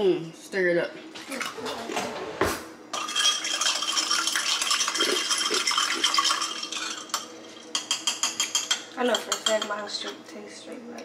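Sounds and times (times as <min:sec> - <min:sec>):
spoon clinking against glass: 0:03.0 - 0:09.7.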